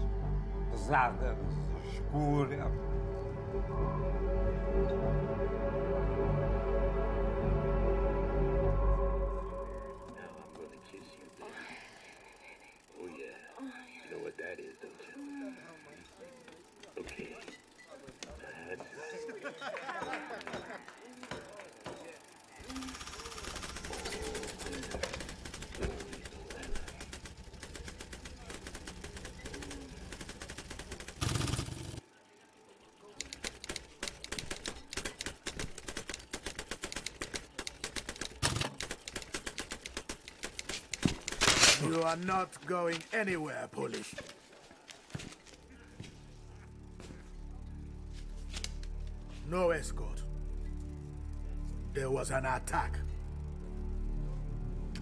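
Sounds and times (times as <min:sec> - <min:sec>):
telex machine keys clattering: 0:21.5 - 0:32.0, 0:33.0 - 0:44.1.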